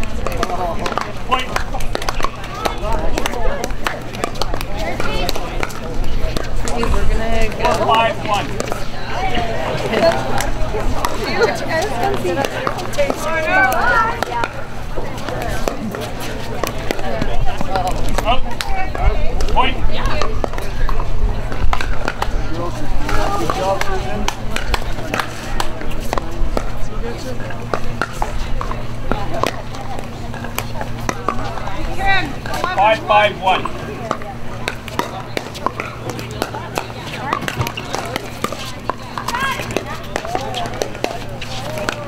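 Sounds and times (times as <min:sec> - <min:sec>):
spectators' voices: 0:00.0 - 0:42.0
paddles hitting plastic ball: 0:00.1 - 0:08.8, 0:33.5 - 0:42.0.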